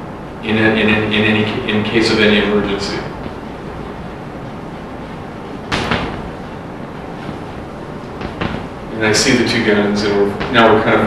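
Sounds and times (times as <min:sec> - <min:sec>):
room noise: 0:00.0 - 0:11.0
tape hiss: 0:00.0 - 0:11.0.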